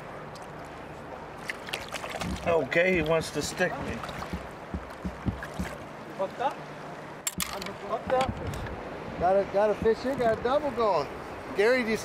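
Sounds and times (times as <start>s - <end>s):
water against hull: 0.0s - 11.6s
boat motor humming: 2.3s - 11.4s
soft low knocks: 3.2s - 5.8s, 7.3s - 8.8s, 9.7s - 10.6s.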